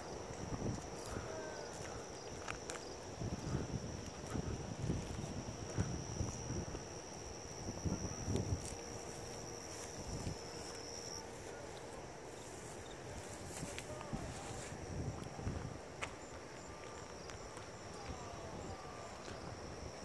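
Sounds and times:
soft footsteps on pavement: 0.0s - 7.6s, 8.2s - 20.0s
wind on microphone: 0.0s - 9.3s, 13.1s - 16.2s, 17.2s - 20.0s.

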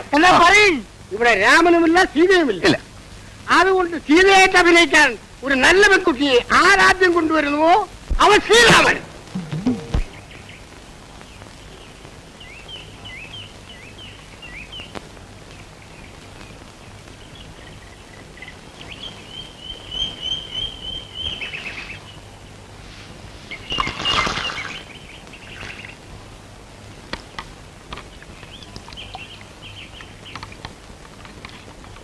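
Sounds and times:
small birds chirping: 9.4s - 22.7s, 23.4s - 26.2s, 26.9s - 32.0s.

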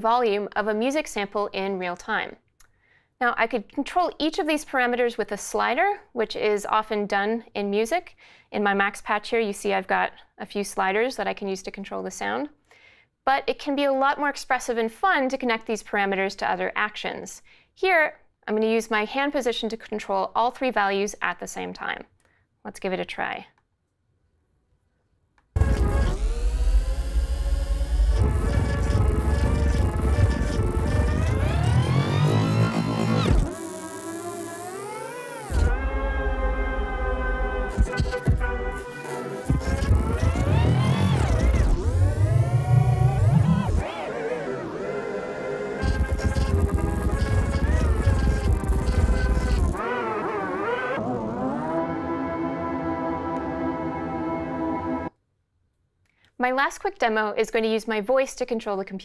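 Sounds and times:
granular processed music: 25.6s - 55.1s.

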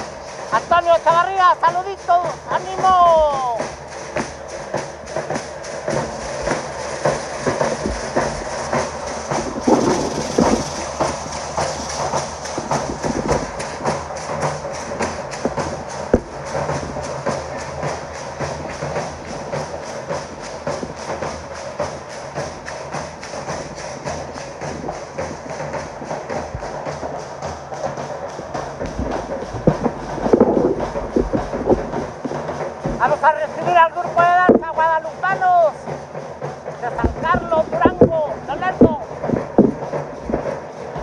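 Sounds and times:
drums beating fast rhythm: 0.0s - 41.0s
gourd rattles clattering: 0.0s - 41.0s
sharp crack: 0.0s - 41.0s.

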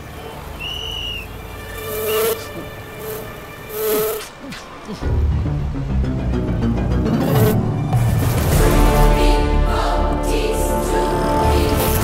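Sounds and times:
housefly buzzing: 1.6s - 4.4s.

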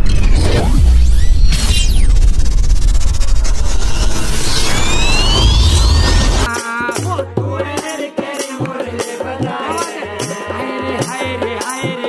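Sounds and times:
deep bass rumble: 0.0s - 6.5s
rising sweeping tones: 0.0s - 6.5s
whooshes: 0.0s - 6.5s.

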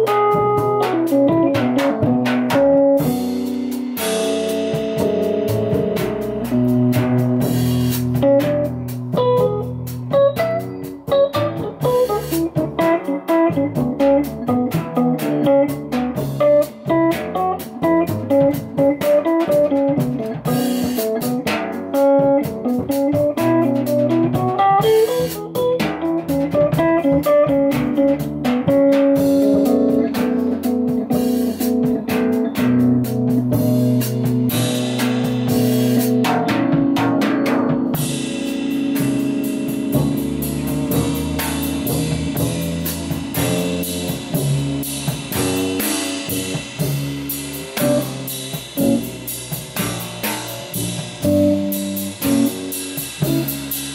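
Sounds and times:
drums and cymbals: 0.0s - 53.9s
electric piano: 0.0s - 53.9s
upright double bass: 0.0s - 53.9s.

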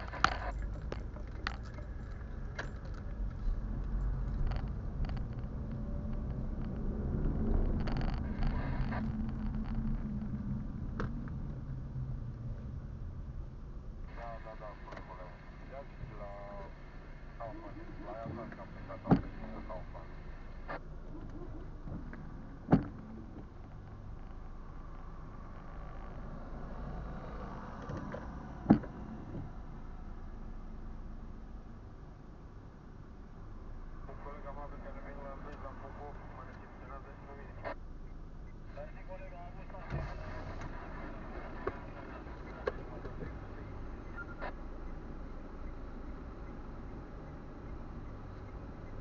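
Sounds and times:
interior clicks and rattles: 0.0s - 12.4s
car engine and road noise: 0.0s - 49.0s.

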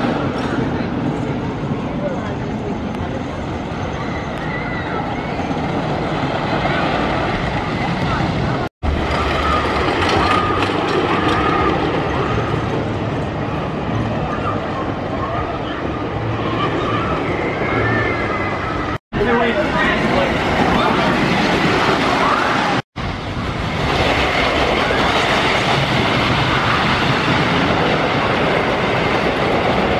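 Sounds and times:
people talking: 0.0s - 5.4s, 6.6s - 8.7s, 14.0s - 22.8s
roller coaster train on track: 0.0s - 29.9s.

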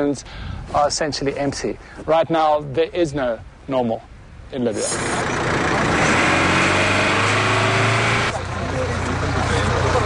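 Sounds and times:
engine humming: 4.8s - 10.0s
jumble of voices: 8.3s - 10.0s.

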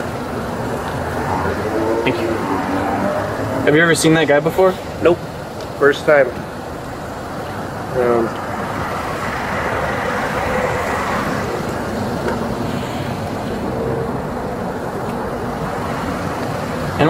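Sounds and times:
traffic hum: 0.0s - 17.0s.

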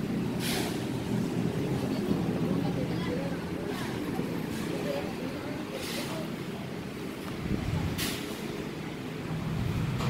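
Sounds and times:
motor vehicle rumble: 0.0s - 10.0s.

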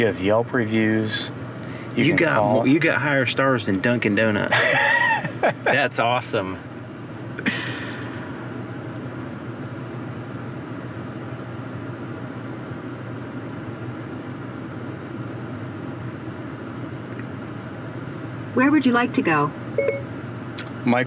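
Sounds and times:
car cabin hum and hiss: 0.0s - 21.0s.

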